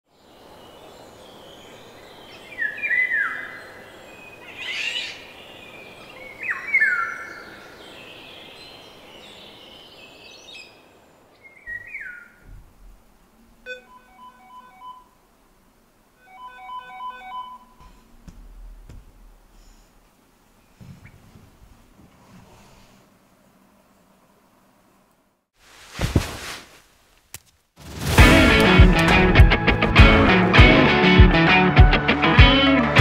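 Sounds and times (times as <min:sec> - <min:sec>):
outdoor hiss: 0:00.1 - 0:13.7, 0:15.0 - 0:16.3, 0:17.6 - 0:29.2
birds whistling downward: 0:11.4 - 0:12.4
smartphone alarm tune: 0:13.7 - 0:15.1, 0:16.2 - 0:17.8.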